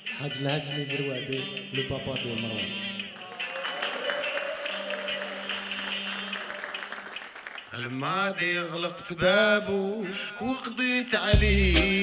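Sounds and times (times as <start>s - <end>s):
rhythmic clicking beat: 0.0s - 3.6s, 11.3s - 12.0s.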